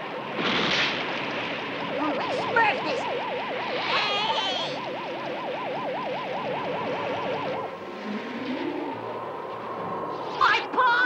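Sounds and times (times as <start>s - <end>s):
warbling tone: 7.4s - 9.4s.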